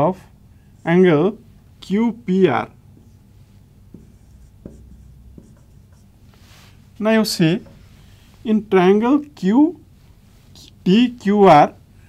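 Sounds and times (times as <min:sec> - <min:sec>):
marker pen writing on whiteboard: 0:00.8 - 0:08.1.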